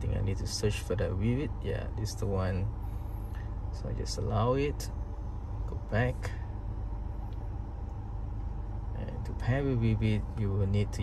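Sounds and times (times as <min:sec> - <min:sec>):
air-conditioning fan running: 0:00.0 - 0:11.0
car engine idling: 0:00.0 - 0:11.0.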